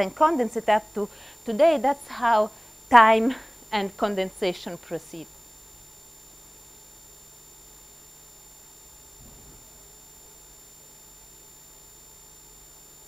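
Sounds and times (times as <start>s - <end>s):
low electrical hum: 0.0s - 13.0s
thin high-pitched whine: 3.8s - 13.0s
steady hiss: 8.2s - 11.2s
faint brief low sound: 9.1s - 9.8s.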